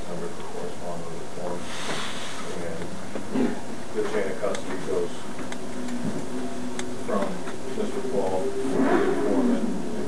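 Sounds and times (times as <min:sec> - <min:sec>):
muffled voice murmuring: 0:00.0 - 0:01.6, 0:07.1 - 0:10.0
low room hum: 0:00.0 - 0:10.0.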